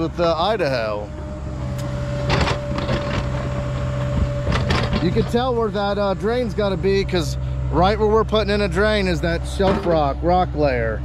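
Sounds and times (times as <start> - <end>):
excavator engine humming with whine: 0.0 - 11.0.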